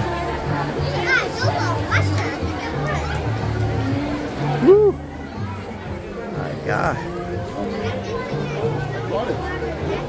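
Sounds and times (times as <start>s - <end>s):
background music with bass: 0.0s - 10.0s
children's voices: 0.0s - 10.0s
crowd chatter: 0.0s - 10.0s.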